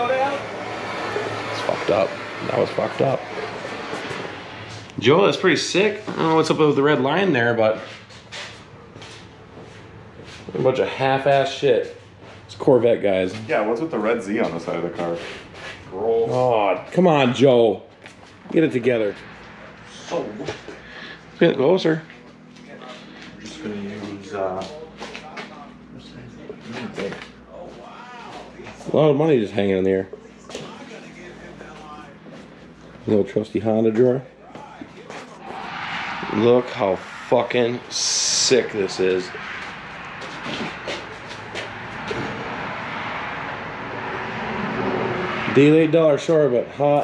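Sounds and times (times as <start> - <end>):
indistinct talking: 0.0 - 7.8
man speaking: 22.7 - 32.2.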